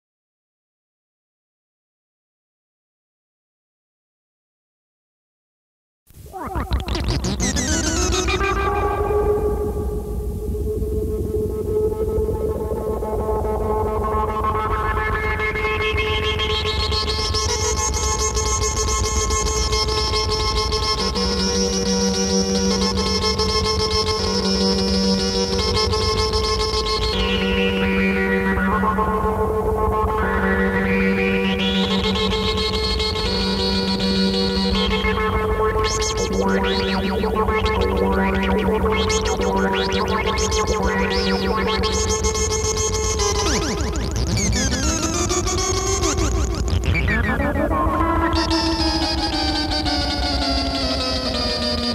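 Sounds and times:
synthesizer drone tone: 6.2 - 26.1, 33.6 - 51.9.

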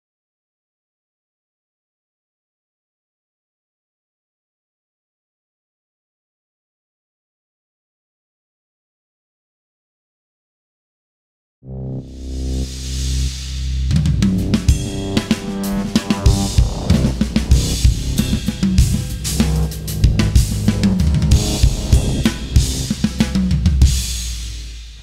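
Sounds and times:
held low bass notes: 11.7 - 24.7
drum kit playing a groove: 13.8 - 25.0.

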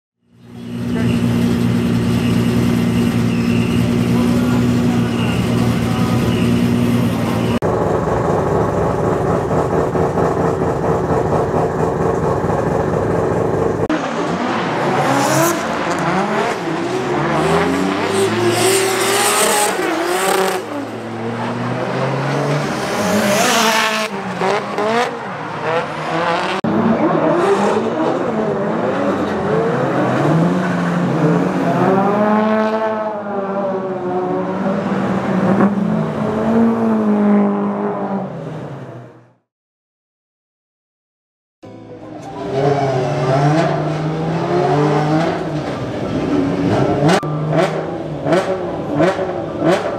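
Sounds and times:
car engines revving: 0.2 - 39.4, 42.1 - 49.9.

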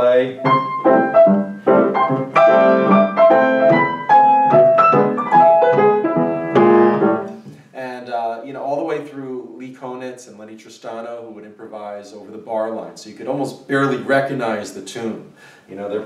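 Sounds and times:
man talking: 0.0 - 0.4, 7.7 - 16.0
stride piano playing: 0.0 - 7.5.

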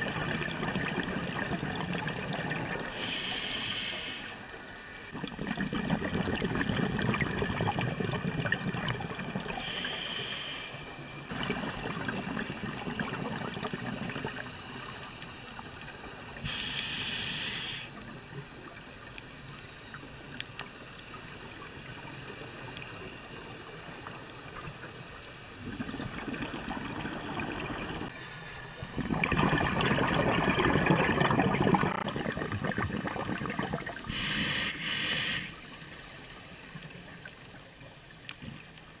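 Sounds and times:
exhaled bubbles gurgling underwater: 0.0 - 3.5, 5.1 - 10.4, 11.0 - 19.1, 21.1 - 28.1, 28.8 - 38.8
hissing inhale through regulator: 2.8 - 5.1, 9.4 - 18.1, 33.8 - 36.5.

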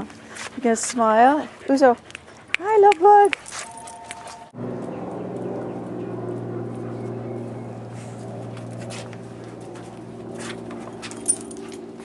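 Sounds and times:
dogs moving about: 3.1 - 4.5, 8.4 - 12.0
metallic clink: 3.4 - 4.5, 11.0 - 11.8.

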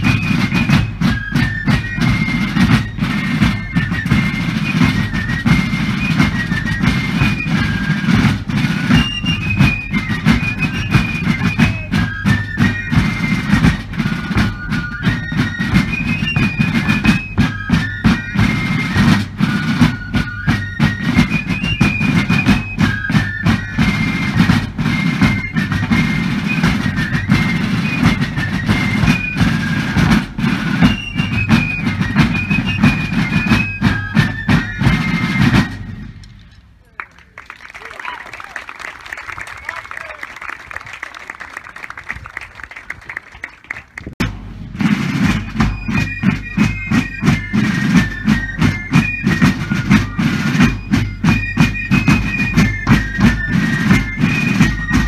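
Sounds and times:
shrill fife melody: 0.0 - 36.2, 44.8 - 55.0
rapid field drum strokes: 0.0 - 36.9, 44.1 - 55.0.

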